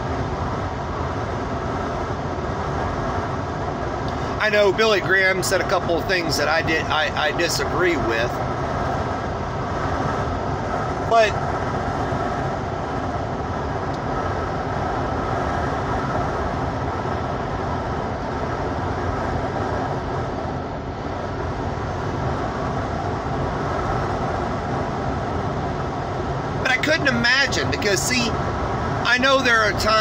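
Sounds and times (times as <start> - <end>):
vehicle road and engine noise: 0.0 - 30.0.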